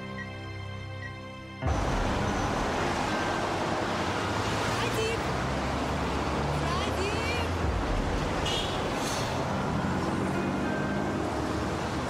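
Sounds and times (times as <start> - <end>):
background music: 0.0 - 12.0
traffic noise from inside car: 1.8 - 12.0.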